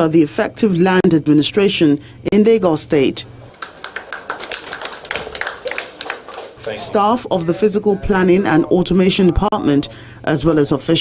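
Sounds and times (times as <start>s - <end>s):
audience clapping: 3.5s - 7.2s.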